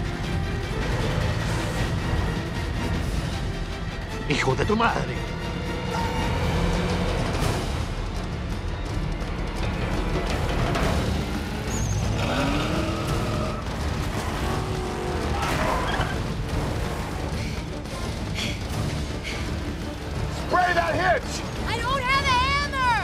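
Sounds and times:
film music score: 0.0 - 23.0
tyre and road noise: 9.0 - 21.2
vehicle engines at speed: 9.8 - 20.5.

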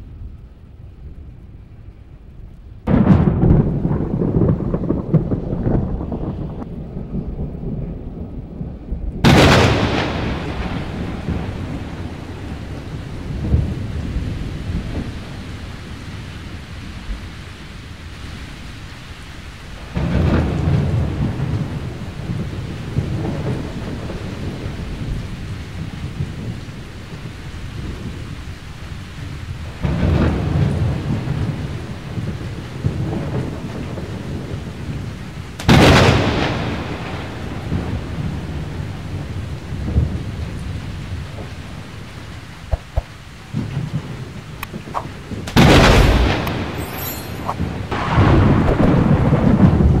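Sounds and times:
rolling thunder: 0.0 - 18.8, 19.8 - 50.0
steady rain: 0.0 - 50.0
loud thunderclaps: 2.8 - 17.1, 19.8 - 28.4, 29.2 - 50.0.

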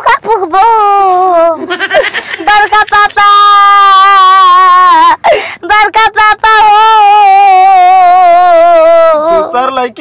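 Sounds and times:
woman wailing and sobbing: 1.5 - 5.8.

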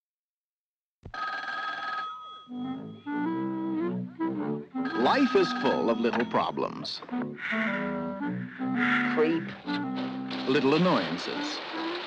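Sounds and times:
telephone bell ringing: 1.1 - 3.2, 4.8 - 7.0
low moving melody: 2.5 - 12.0.

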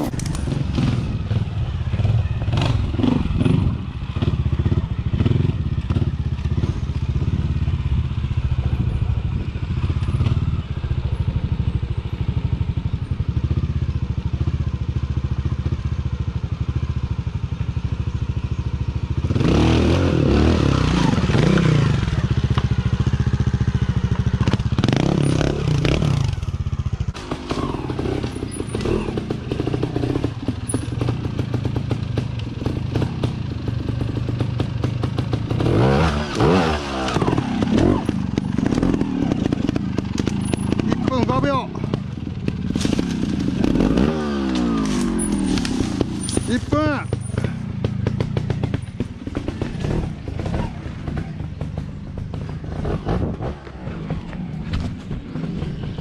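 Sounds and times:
motorcycle engine idling and revving: 0.0 - 56.0.

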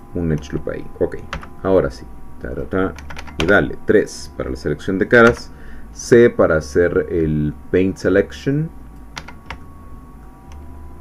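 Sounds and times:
faint steady hum: 0.0 - 11.0
keyboard keys clicking: 1.3 - 1.5, 3.0 - 3.6, 5.2 - 5.5, 9.2 - 9.6.

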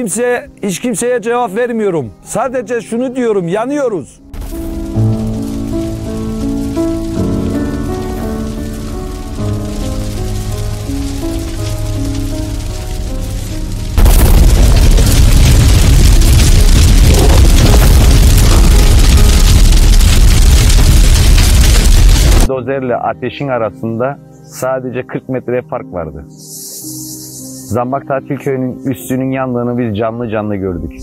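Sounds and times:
background music sustained notes: 0.0 - 31.0
wildfire crackling roar: 4.4 - 22.5.

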